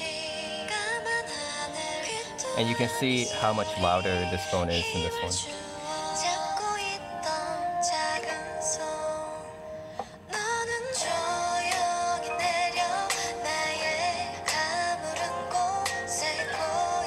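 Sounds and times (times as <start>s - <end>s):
pop song from phone speakers: 0.0s - 17.0s.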